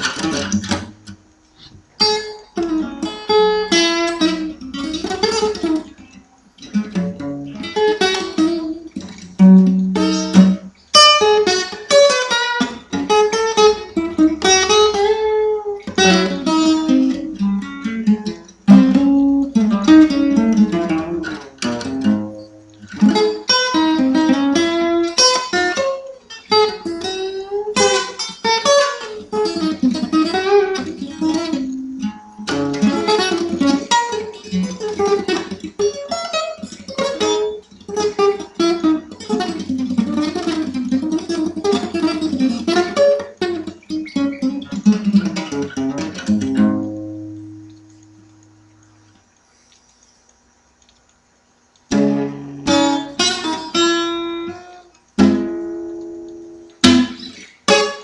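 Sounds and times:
fingerstyle acoustic blues guitar: 0.0 - 49.6, 51.4 - 58.0.

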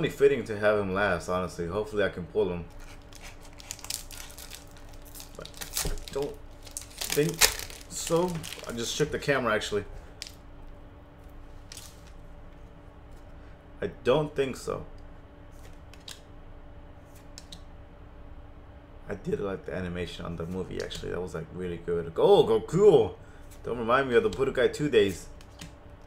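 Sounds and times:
faint steady hum: 0.0 - 26.0
foil pack crinkling: 2.7 - 9.3, 11.6 - 12.2.

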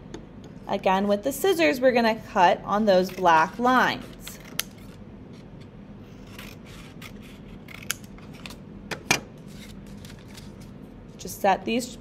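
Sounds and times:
scissors cutting paper: 6.2 - 8.6
paper rustling: 9.4 - 10.7.

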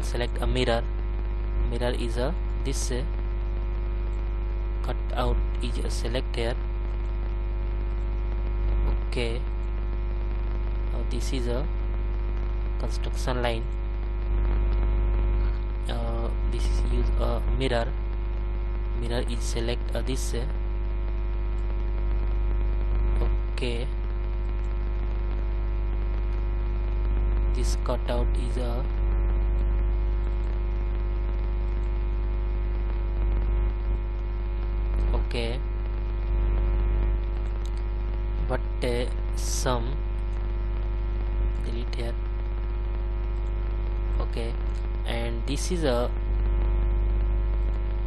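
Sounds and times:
man's voice: 0.0 - 0.9, 1.7 - 3.2, 4.8 - 6.6, 11.0 - 11.7, 12.8 - 13.7, 15.9 - 18.0, 19.0 - 20.6, 27.6 - 29.0, 35.0 - 35.6, 38.4 - 40.0, 44.2 - 46.2
electrical mains hum: 0.0 - 48.0.

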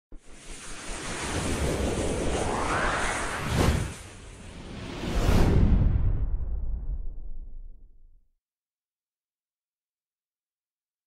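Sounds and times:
wind-like whoosh: 0.1 - 8.0.

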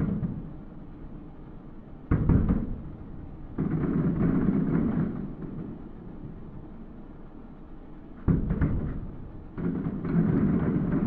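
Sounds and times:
fireworks booming: 2.1 - 5.8, 8.3 - 11.0.

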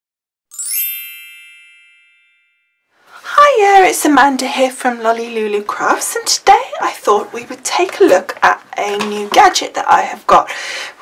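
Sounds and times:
sparkly chime: 0.5 - 2.9
woman speaking: 3.2 - 10.7.

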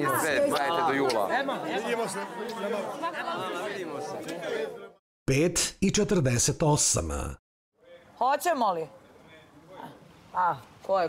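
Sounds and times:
overlapping chatter of voices: 0.0 - 5.0.

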